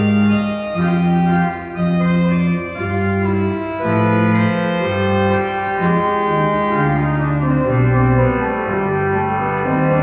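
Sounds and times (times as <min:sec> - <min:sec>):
electronic organ chords: 0:00.0 - 0:10.0.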